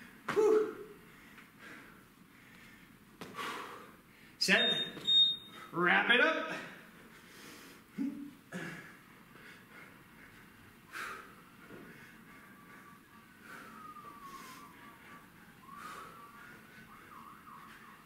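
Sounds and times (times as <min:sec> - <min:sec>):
faint ambulance siren wailing: 0:11.3 - 0:18.0.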